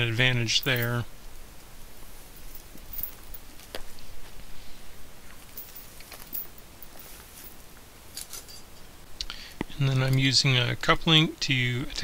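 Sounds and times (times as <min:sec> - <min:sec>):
steel chain clinking: 0:00.0 - 0:01.1, 0:02.1 - 0:03.9, 0:05.3 - 0:09.0.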